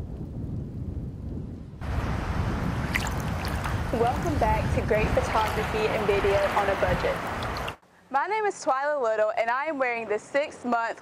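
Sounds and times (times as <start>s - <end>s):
low rumble of thunder: 0.0s - 7.3s
heavy rain hiss: 1.8s - 7.8s.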